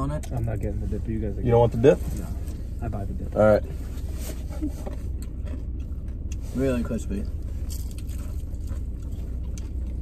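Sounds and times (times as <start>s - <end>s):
car rumble: 0.0s - 10.0s
crunching and chewing food: 4.8s - 10.0s.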